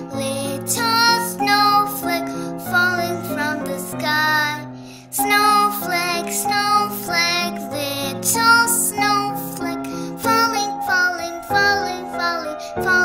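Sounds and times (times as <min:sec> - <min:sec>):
children's song with accompaniment: 0:00.0 - 0:13.0.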